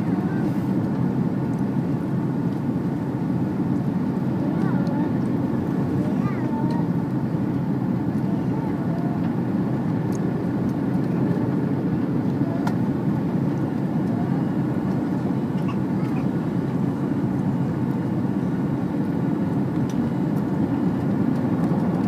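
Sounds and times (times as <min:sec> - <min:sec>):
airplane cabin rumble: 0:00.0 - 0:22.0.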